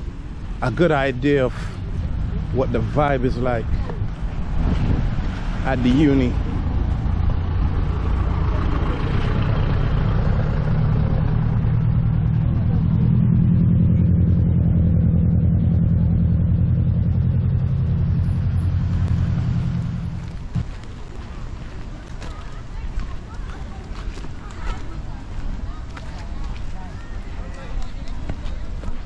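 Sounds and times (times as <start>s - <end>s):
minibus engine running: 0.0s - 29.0s.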